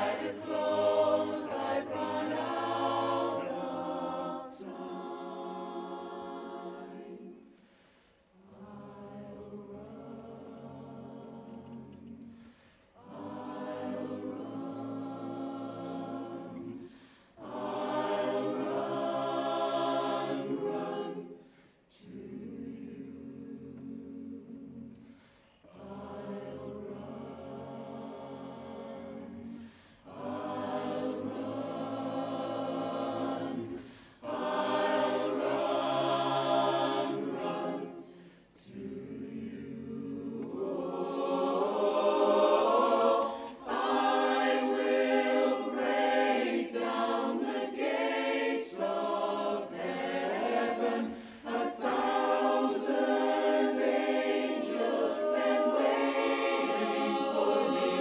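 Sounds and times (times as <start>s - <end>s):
barbershop chorus singing a cappella: 0.0s - 58.0s.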